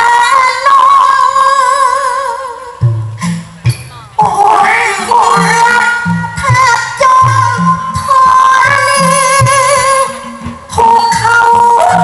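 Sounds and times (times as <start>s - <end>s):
woman singing through pa: 0.0s - 2.9s, 4.2s - 12.0s.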